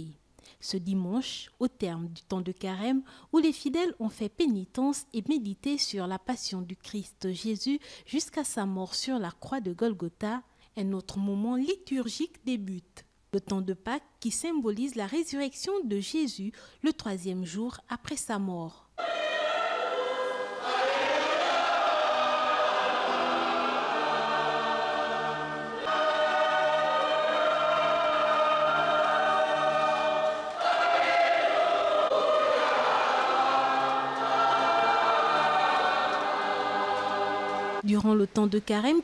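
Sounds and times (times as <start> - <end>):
choir singing a hymn: 19.0 - 37.8.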